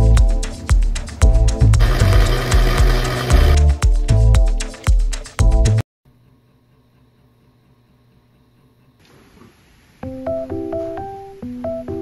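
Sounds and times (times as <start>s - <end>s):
background music with steady beat: 0.0s - 9.0s, 10.0s - 12.0s
electric blender running: 1.6s - 3.8s.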